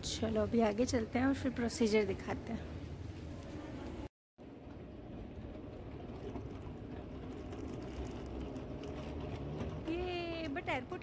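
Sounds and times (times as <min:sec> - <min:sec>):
low rumble of moving walkway: 0:02.5 - 0:11.0.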